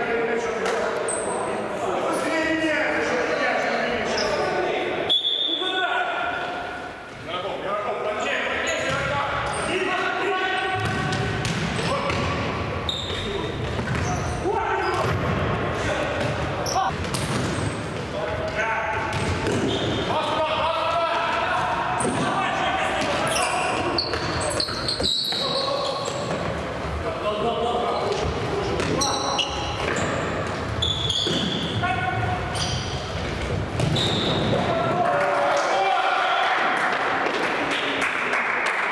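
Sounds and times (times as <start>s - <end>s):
players calling and shouting: 0.0s - 38.0s.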